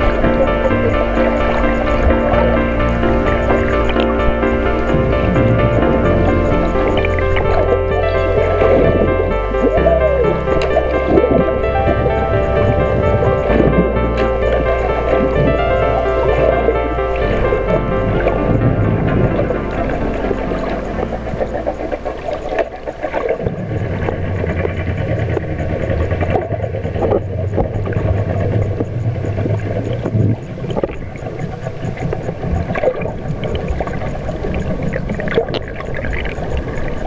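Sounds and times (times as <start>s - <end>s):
background music: 0.0s - 26.2s
boat engine hum underwater: 0.0s - 37.0s
underwater gurgling and rushing: 0.0s - 37.0s.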